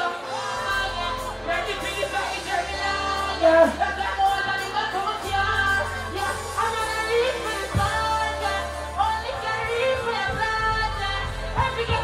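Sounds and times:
man singing into microphone: 0:00.0 - 0:12.0
backing track with bass thump: 0:00.4 - 0:12.0.

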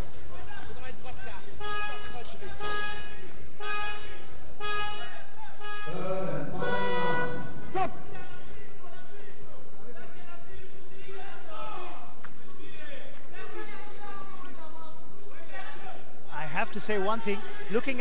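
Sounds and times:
horn blasts: 0:01.5 - 0:08.1.

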